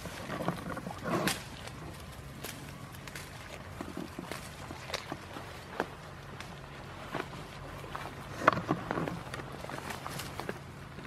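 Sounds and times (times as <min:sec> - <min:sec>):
goats chewing foliage: 0:00.0 - 0:11.0
leaves and twigs rustling: 0:00.0 - 0:11.0.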